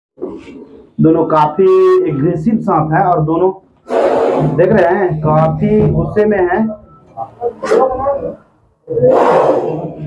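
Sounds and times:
cobra hissing: 0:03.9 - 0:04.6.

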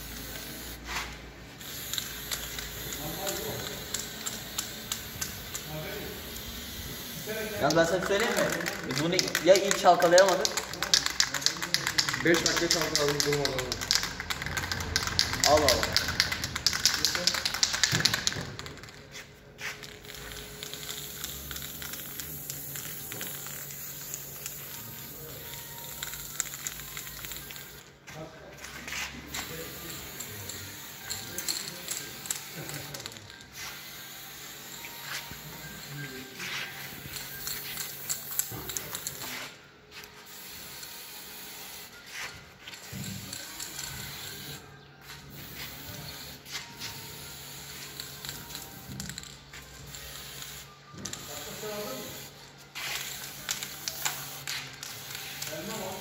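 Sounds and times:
spray paint can hissing: 0:00.0 - 0:27.9, 0:28.9 - 0:56.0.

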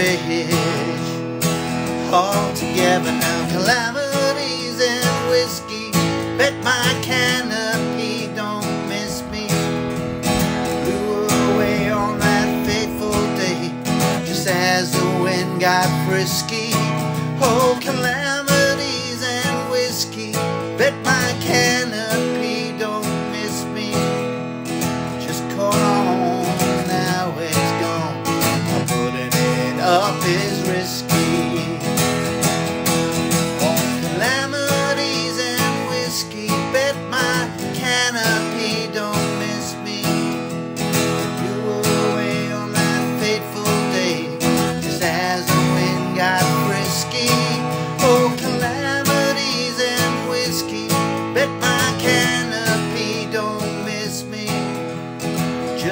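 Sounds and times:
acoustic guitar strumming: 0:00.0 - 0:55.9
man singing: 0:00.0 - 0:55.9.

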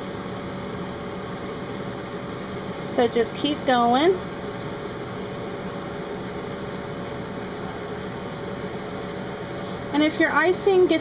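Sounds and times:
steady room hum and hiss: 0:00.0 - 0:11.0.

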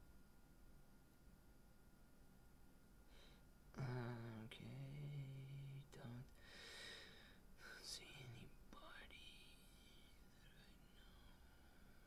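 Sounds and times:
faint whispered voice: 0:03.8 - 0:06.4, 0:07.6 - 0:12.0.

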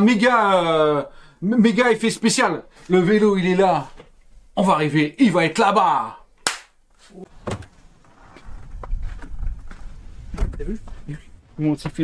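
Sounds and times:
sharp snap: 0:06.4 - 0:06.8
wind rumble on microphone: 0:08.4 - 0:10.9.

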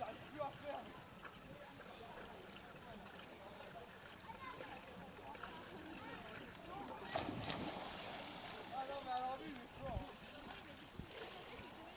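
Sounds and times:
diver splashing into water: 0:07.0 - 0:08.7.

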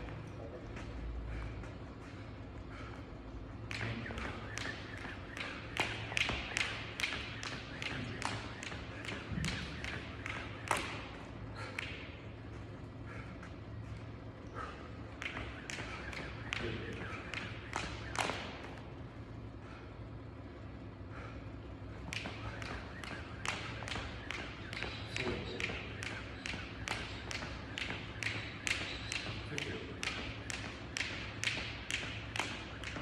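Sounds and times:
jump rope slapping rubber floor: 0:00.0 - 0:14.0, 0:14.6 - 0:19.1, 0:21.9 - 0:33.0.

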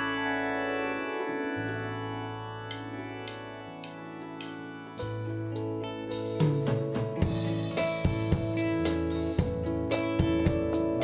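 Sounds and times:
synthesizer sustained chords: 0:00.0 - 0:11.0
light percussive ticks: 0:02.6 - 0:04.6.

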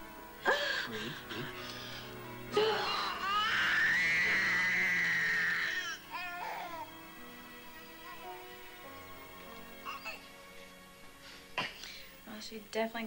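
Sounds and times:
soft background music: 0:00.0 - 0:13.0
woman wailing: 0:02.5 - 0:05.9
baby crying: 0:02.5 - 0:07.0, 0:07.9 - 0:08.4, 0:09.8 - 0:10.3.

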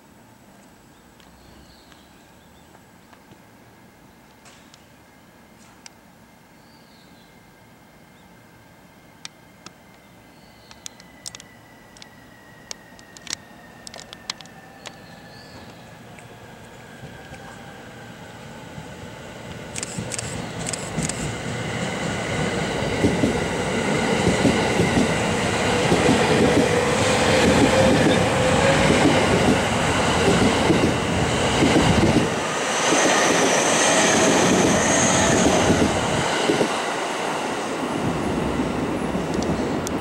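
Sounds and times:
electric train whine: 0:02.8 - 0:40.0.

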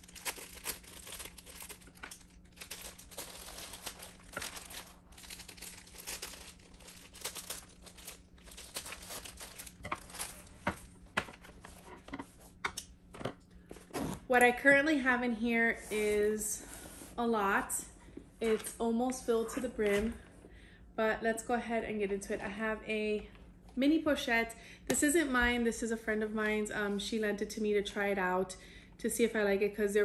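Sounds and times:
plastic wrap crinkling and tearing: 0:00.0 - 0:11.8.

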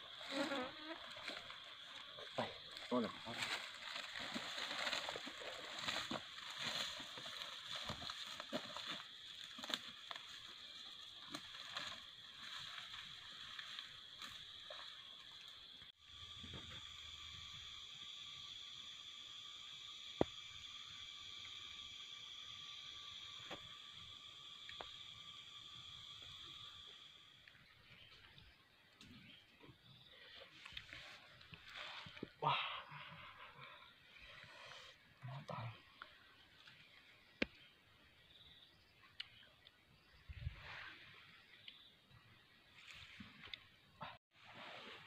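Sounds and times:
insects droning: 0:00.0 - 0:45.0.

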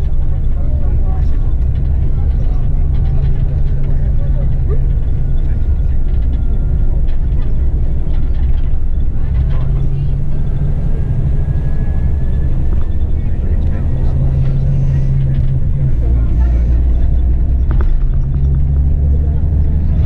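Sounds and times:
coach engine drone: 0:00.0 - 0:20.0
road rumble: 0:00.0 - 0:20.0.

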